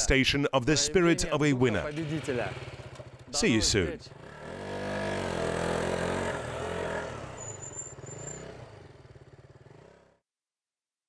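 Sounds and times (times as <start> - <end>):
small motorcycle engine revving: 1.9 - 10.2.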